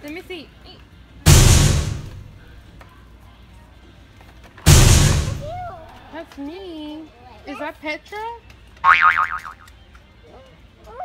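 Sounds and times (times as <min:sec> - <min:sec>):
loud booms: 0:01.3 - 0:02.4, 0:04.7 - 0:05.8.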